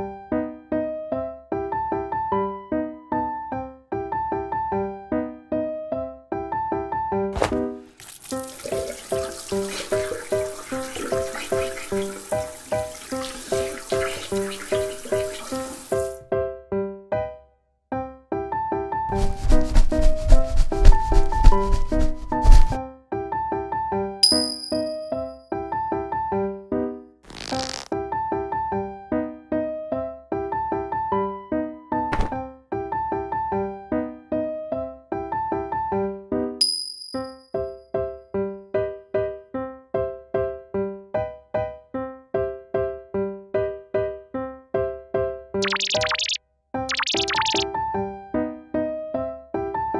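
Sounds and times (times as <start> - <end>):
shower spray into basin: 7.4 - 16.2
rhythmic scrubbing of hair: 19.1 - 22.8
high bell-like ding: 24.2 - 25.4, 36.6 - 37.7
plucked keyboard music: 45.6 - 47.8.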